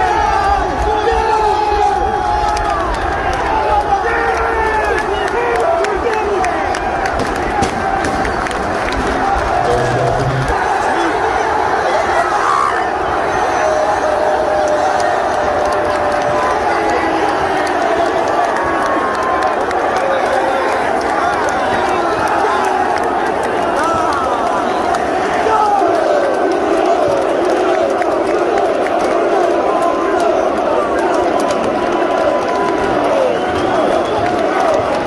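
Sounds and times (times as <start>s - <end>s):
crowd cheering and shouting: 0.0s - 35.0s
hands clapping: 2.4s - 10.6s, 14.5s - 35.0s.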